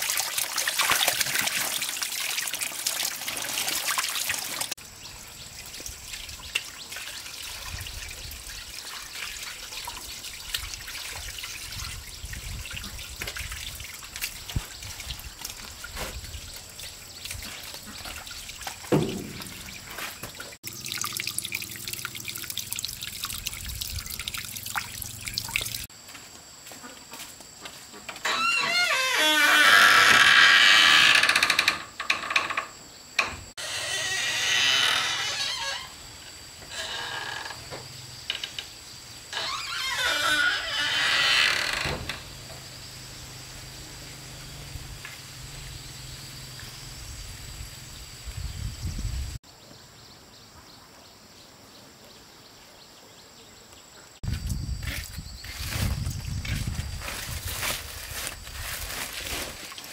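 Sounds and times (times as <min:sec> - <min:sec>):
cloth being washed splashing: 0:00.0 - 0:04.8, 0:05.6 - 0:25.9, 0:57.0 - 0:59.9
water running into plastic basin: 0:00.0 - 0:04.8, 0:05.5 - 0:25.9.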